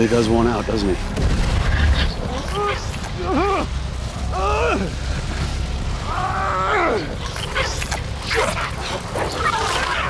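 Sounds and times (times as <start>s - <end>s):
sharp crackling effects: 0.0s - 10.0s.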